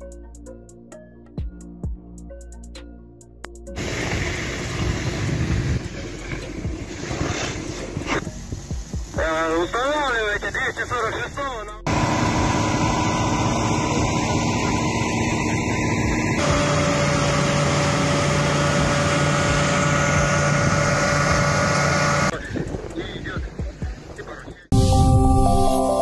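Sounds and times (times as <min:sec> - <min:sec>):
fire engine droning: 0:03.7 - 0:22.4
loud rushing noise: 0:03.8 - 0:08.3.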